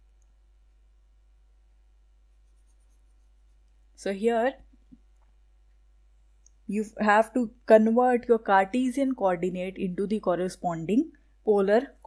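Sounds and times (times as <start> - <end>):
stylus scratching on pen tablet: 2.3 - 3.7
light ticks: 6.4 - 6.6.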